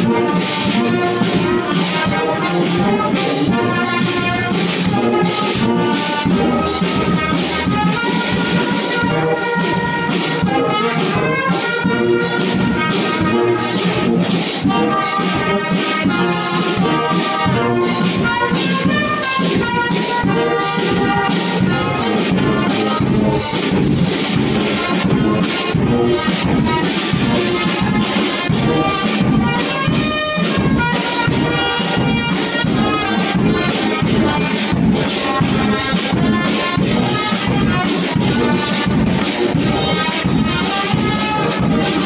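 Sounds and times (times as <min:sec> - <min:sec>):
bass drum and snare beat: 0:00.0 - 0:42.0
brass band playing: 0:00.0 - 0:42.0.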